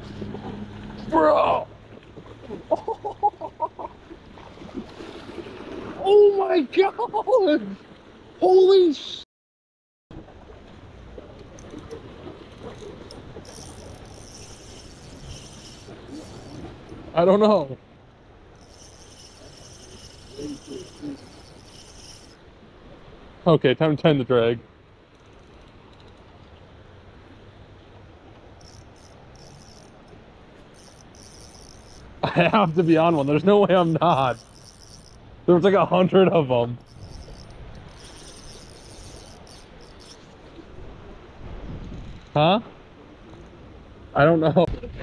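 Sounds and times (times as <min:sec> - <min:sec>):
creek water running: 0:10.1 - 0:24.6, 0:25.8 - 0:41.5
faint high-pitched chirring: 0:12.5 - 0:17.0, 0:18.4 - 0:22.4, 0:28.4 - 0:35.5, 0:36.8 - 0:40.6.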